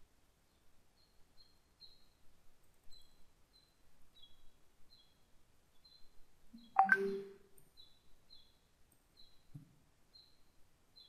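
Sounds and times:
small bird chirping: 2.8s - 11.0s.

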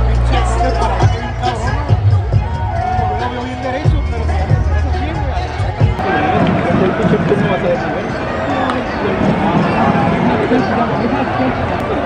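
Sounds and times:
crowd murmur: 0.0s - 12.0s
spectators talking: 0.0s - 12.0s.

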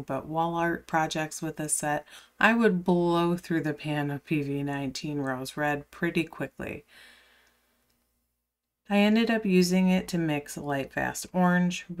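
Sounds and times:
woman speaking: 0.0s - 6.9s, 8.9s - 12.0s
woman breathing: 2.0s - 2.4s, 6.8s - 7.9s.

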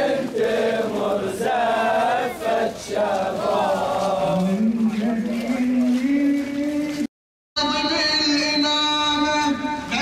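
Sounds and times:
crowd chanting slogans: 0.0s - 6.8s
man's voice chanting: 3.8s - 10.0s.

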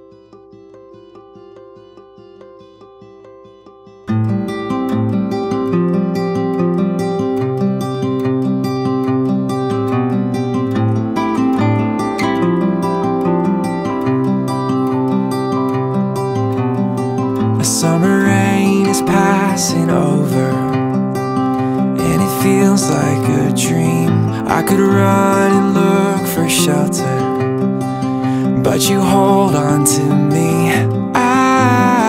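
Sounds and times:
acoustic guitar accompaniment: 0.0s - 32.0s.

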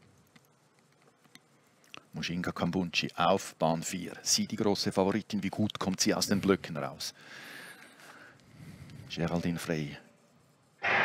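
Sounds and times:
low murmur and hiss: 0.0s - 10.8s.

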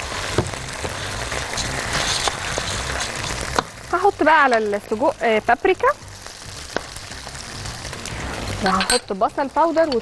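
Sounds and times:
food sizzling in hot oil: 0.0s - 10.0s.

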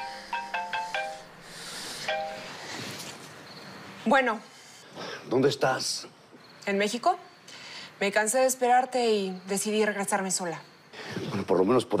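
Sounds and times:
phone melodic ringtone: 0.0s - 1.4s, 2.0s - 2.6s.

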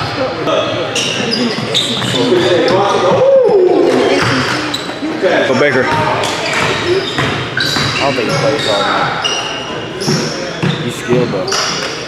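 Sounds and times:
sneaker squeaks: 0.0s - 3.2s, 4.1s - 5.2s, 5.8s - 12.0s
echoing voices shouting: 2.6s - 4.7s.

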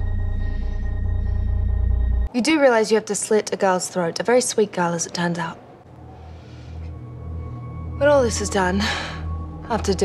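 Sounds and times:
deep low drone: 0.0s - 2.3s, 5.9s - 10.0s.

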